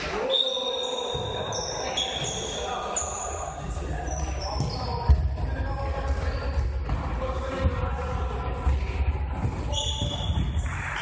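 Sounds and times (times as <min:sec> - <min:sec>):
footsteps in sports hall: 0:00.0 - 0:11.0.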